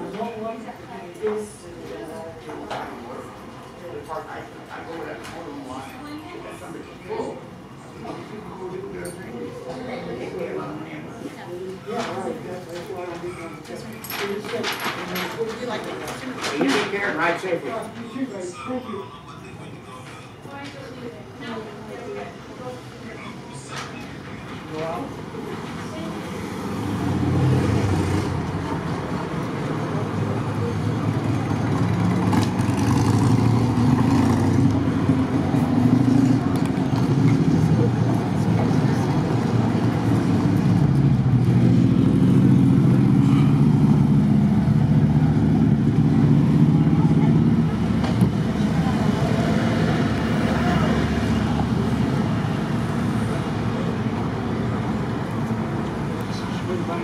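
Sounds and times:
vehicles driving past: 22.5 - 57.0.

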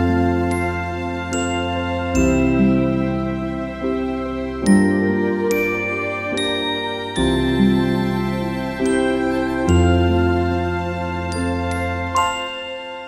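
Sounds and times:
soft sustained low chords: 0.0 - 12.2
bell-like lullaby melody: 0.0 - 13.0.

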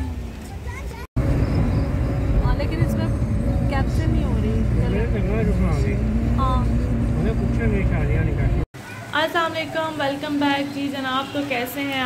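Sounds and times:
car driving rumble: 0.0 - 8.7
roadside traffic noise: 0.0 - 12.0.

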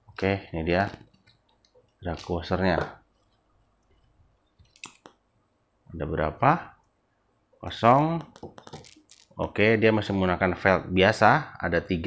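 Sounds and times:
small metal parts clicking: 8.6 - 9.4.

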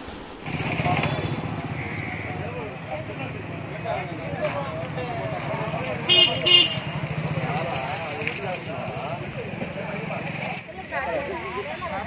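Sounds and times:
people talking: 0.5 - 12.0
vehicle horn toots: 6.1 - 6.9.

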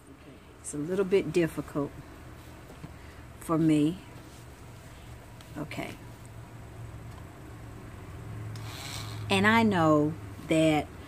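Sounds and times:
electric nail drill humming: 8.5 - 9.3.

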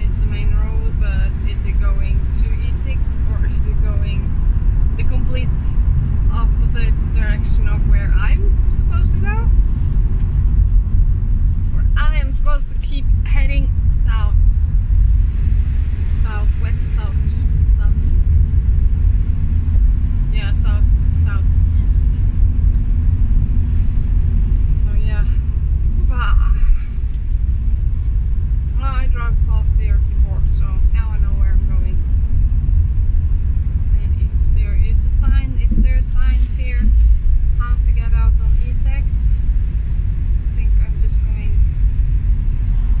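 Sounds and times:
vehicle engine and road rumble: 0.0 - 43.0.

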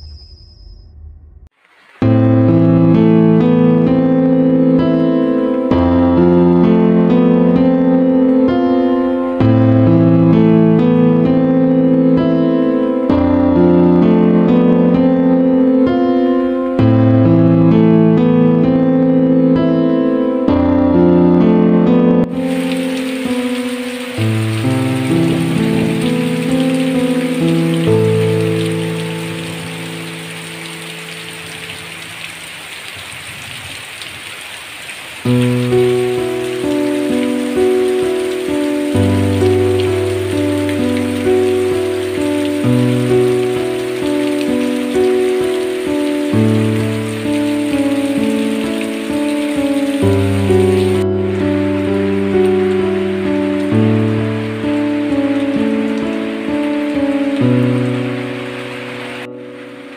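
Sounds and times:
heavy rain falling: 1.6 - 15.0, 22.2 - 59.9
soft keyboard music: 2.0 - 32.2, 35.3 - 59.9.

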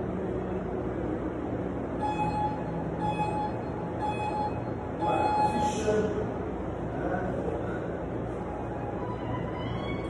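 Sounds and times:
steady background hum: 0.0 - 10.0
interval timer beeps: 2.0 - 5.7.

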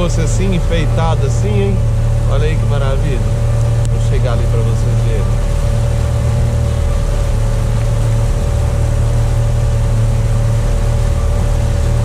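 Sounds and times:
outboard motor running: 0.0 - 12.0
wake rushing along hull: 0.0 - 12.0.

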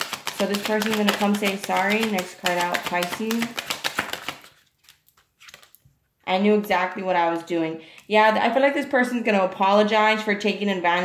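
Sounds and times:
cards being shuffled: 0.0 - 5.8.

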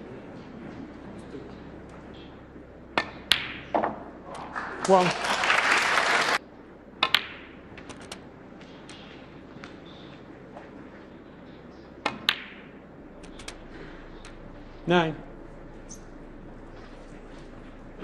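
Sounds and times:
snooker balls clicking: 0.4 - 5.1, 7.0 - 14.9
audience applause: 4.3 - 6.4.

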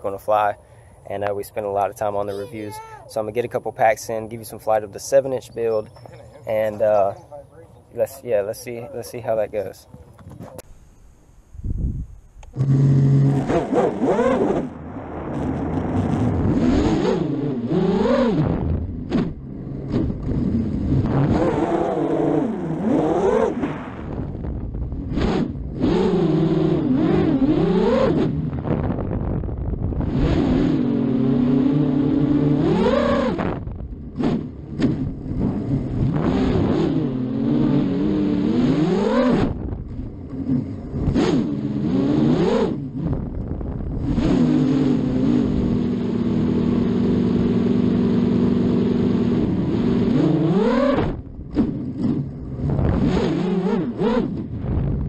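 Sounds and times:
drone motor whine: 12.2 - 14.7.

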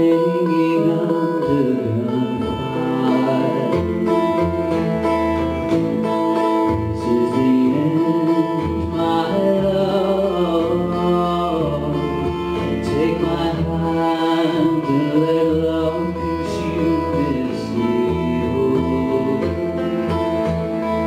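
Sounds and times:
acoustic guitar strummed: 0.0 - 21.0
double bass plucked: 0.0 - 21.0.

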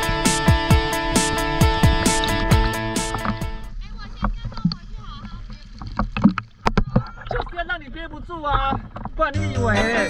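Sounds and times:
sharp water splashes: 0.0 - 7.7
sea water sloshing against a buoy: 1.4 - 9.3.

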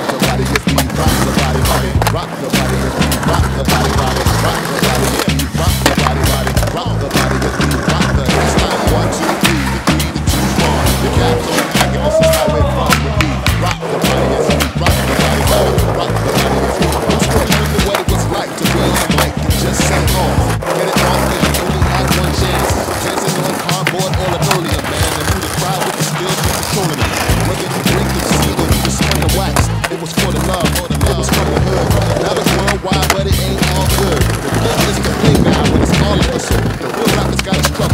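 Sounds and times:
music with heavy bass beat: 0.0 - 37.9
skateboard wheels rolling on pavement: 0.0 - 37.9
skateboards clacking on landing: 0.0 - 37.9.

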